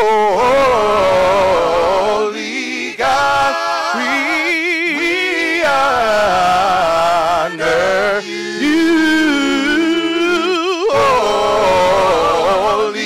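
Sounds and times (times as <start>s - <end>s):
women singing gospel song: 0.1s - 13.0s.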